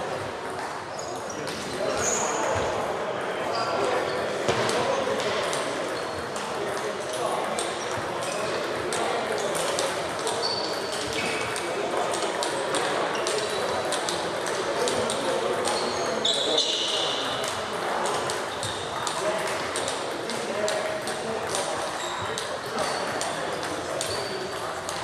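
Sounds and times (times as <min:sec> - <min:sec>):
murmur of voices: 0:00.0 - 0:25.0
table tennis balls clicking: 0:04.6 - 0:15.9, 0:17.3 - 0:25.0.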